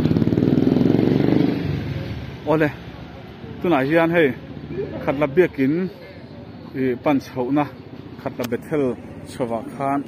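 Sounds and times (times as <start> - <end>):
motor scooter passing: 0.0 - 2.4.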